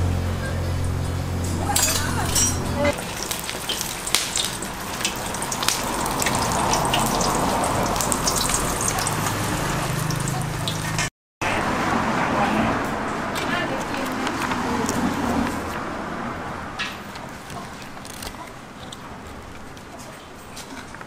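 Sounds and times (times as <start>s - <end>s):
fish sizzling in hot oil: 3.0s - 11.1s.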